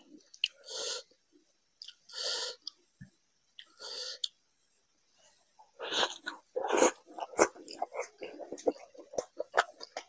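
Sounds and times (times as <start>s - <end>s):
wet chewing: 5.9s - 10.0s.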